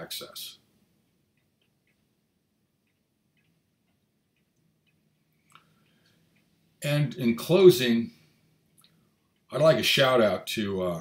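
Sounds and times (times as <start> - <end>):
man speaking: 0.0 - 0.6, 6.8 - 8.2, 9.5 - 11.0
soft ticks: 0.6 - 7.4, 8.1 - 9.6.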